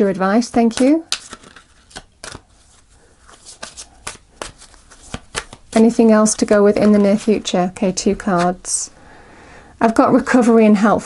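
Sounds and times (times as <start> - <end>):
cards being shuffled: 0.0 - 8.8.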